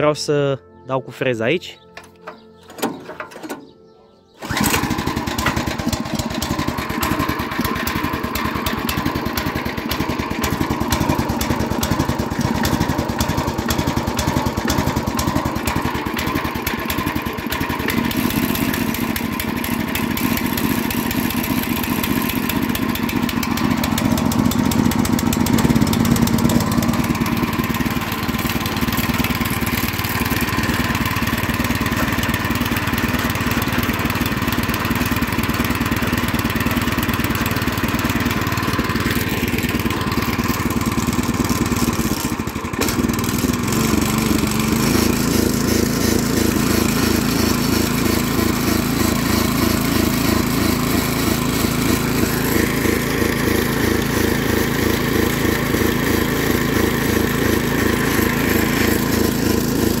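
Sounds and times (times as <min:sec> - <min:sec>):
small petrol engine running: 0:02.3 - 1:00.0.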